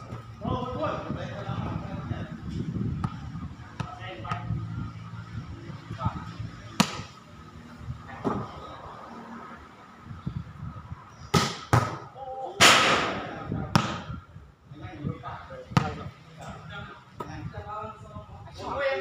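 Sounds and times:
volleyball slaps: 6.8 - 7.2, 11.3 - 12.0, 12.6 - 14.1.

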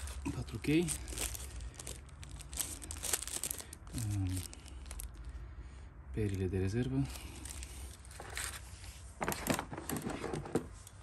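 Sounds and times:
plastic bag crinkling: 0.0 - 5.3, 7.0 - 10.0.

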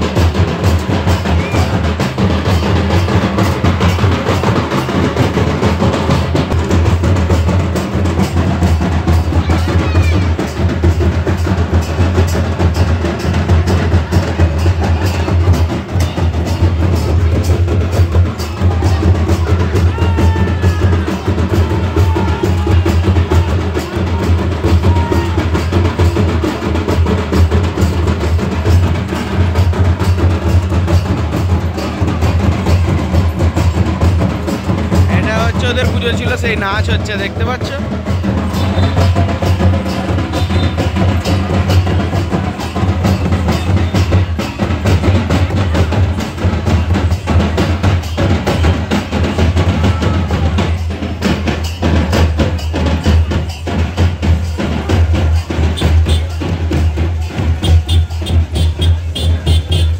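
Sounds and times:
barrel drums beating: 0.0 - 59.9
kettle drum heavy low beat: 0.0 - 59.9.

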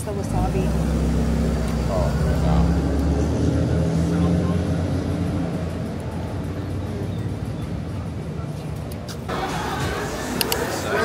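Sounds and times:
outdoor traffic noise: 0.0 - 11.0
vehicle engine hum: 0.0 - 11.0.

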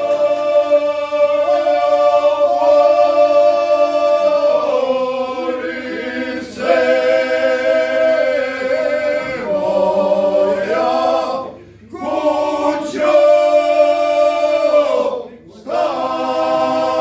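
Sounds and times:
men's group singing unaccompanied: 0.0 - 17.0.

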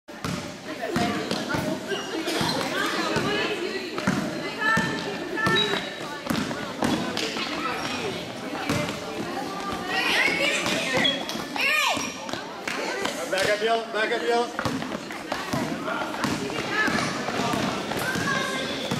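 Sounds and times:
people's voices in a hall: 0.1 - 18.9
basketball dribbling on gym floor: 0.2 - 1.6, 4.0 - 7.3, 8.2 - 9.8, 14.6 - 18.9.

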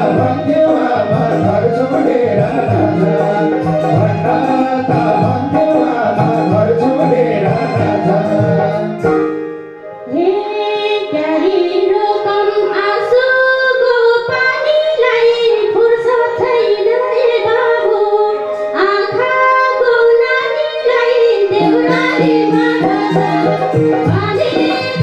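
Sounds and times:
folk backing instruments: 0.0 - 25.0
woman singing into a microphone: 0.0 - 25.0.

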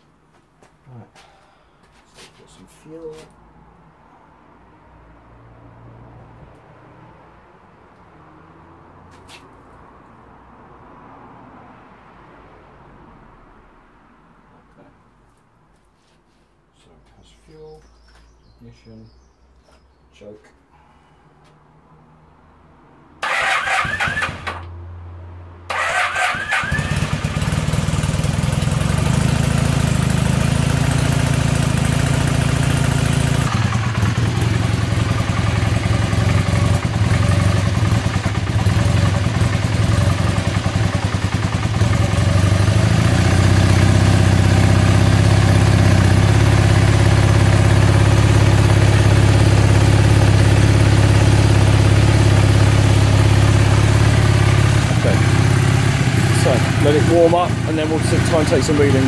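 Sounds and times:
electric starter cranking: 23.2 - 24.7
motorcycle engine idling: 25.7 - 59.0.

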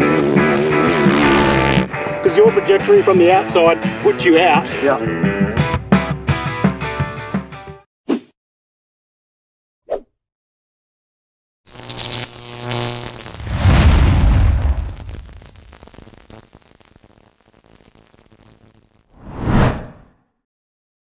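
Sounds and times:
short whoosh: 13.4 - 15.2, 19.2 - 20.1
deep boom: 13.4 - 15.3.

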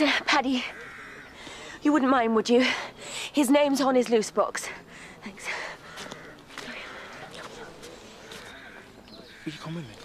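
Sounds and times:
faint background voices: 4.0 - 10.0.

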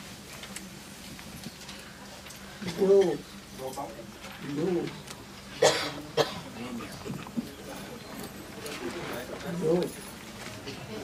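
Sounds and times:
low indistinct voices: 0.5 - 11.0
cough-like burst: 5.6 - 6.5.

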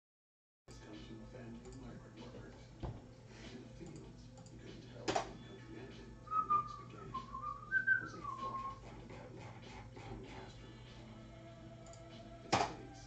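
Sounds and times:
person whistling a tune: 6.3 - 8.8.

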